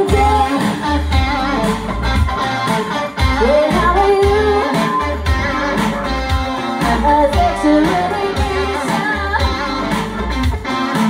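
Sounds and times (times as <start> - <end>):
woman singing: 0.0 - 1.3, 3.4 - 5.5, 6.8 - 10.1
bass guitar: 0.0 - 11.0
drums: 0.0 - 11.0
electric guitar: 0.0 - 11.0.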